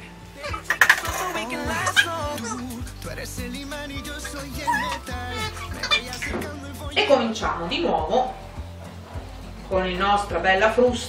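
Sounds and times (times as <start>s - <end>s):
background music with singing: 0.0s - 11.0s.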